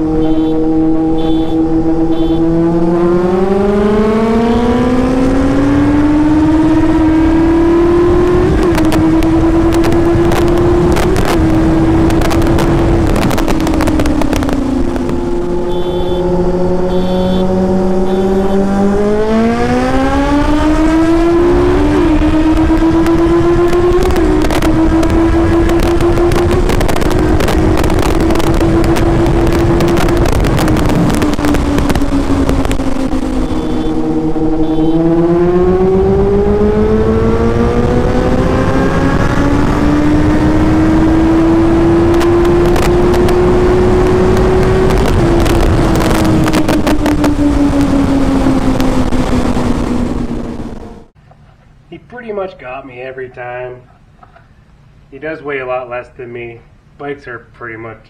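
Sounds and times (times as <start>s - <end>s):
wind buffeting microphone: 0.0s - 15.8s, 16.5s - 51.1s
motorcycle engine revving: 0.0s - 51.2s.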